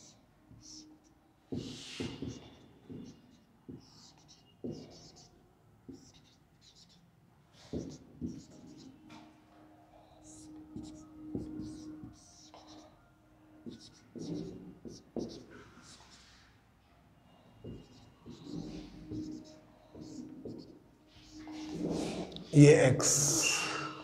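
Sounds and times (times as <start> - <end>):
marker squeaking on whiteboard: 0.0 - 9.4, 10.0 - 13.0, 13.6 - 16.5, 17.3 - 22.5
marker tip tapping board: 1.5 - 5.2, 7.7 - 8.8, 10.8 - 12.7, 13.6 - 15.5, 17.6 - 20.8.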